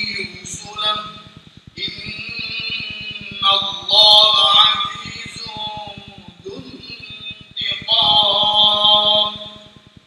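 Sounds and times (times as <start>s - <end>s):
man chanting melodic recitation: 0.0s - 9.8s.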